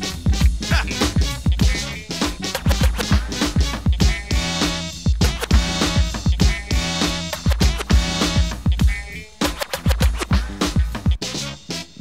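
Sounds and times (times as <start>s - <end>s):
record scratching: 0.0s - 11.6s
drum machine kicks: 0.3s - 11.2s.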